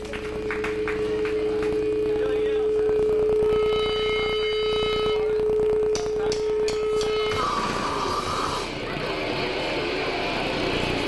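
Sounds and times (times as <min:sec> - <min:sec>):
electric guitar feedback whine: 0:00.0 - 0:11.0
high squealing feedback tones: 0:01.8 - 0:09.0.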